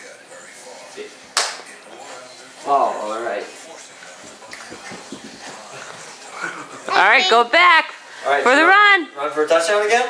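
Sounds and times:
soft knocks: 4.3 - 5.6.

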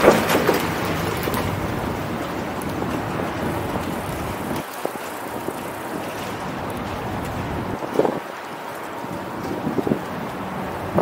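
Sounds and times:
street traffic: 0.0 - 11.0
wind rushing over microphone: 0.0 - 11.0.

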